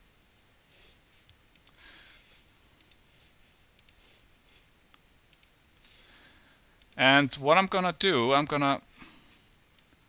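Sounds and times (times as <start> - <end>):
computer mouse clicks: 0.8 - 1.8, 2.8 - 3.0, 3.8 - 4.2, 5.3 - 5.5.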